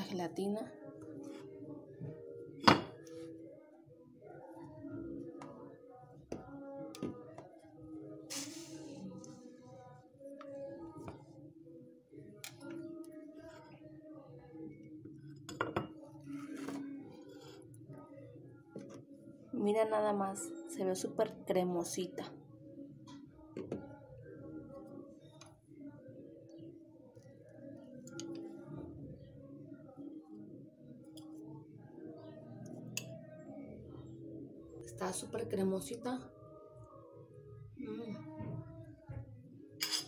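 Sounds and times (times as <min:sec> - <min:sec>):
knife clinking on ceramic plate: 0:39.8 - 0:40.0.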